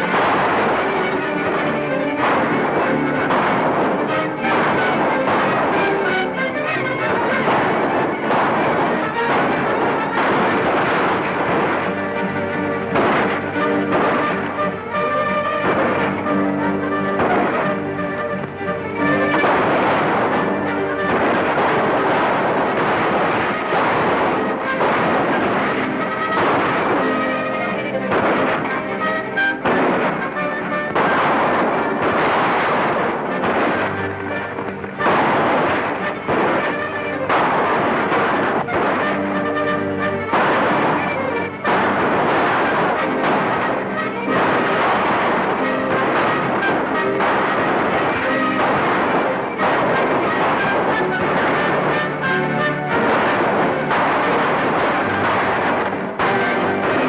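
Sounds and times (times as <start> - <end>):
gunshots: 0.0 - 57.0
orchestral western film music: 0.0 - 57.0.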